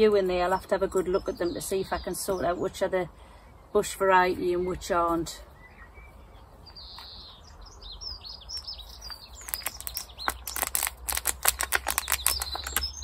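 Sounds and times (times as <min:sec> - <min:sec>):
small birds chirping: 0:00.0 - 0:13.0
plastic plant pot crackling: 0:08.4 - 0:13.0.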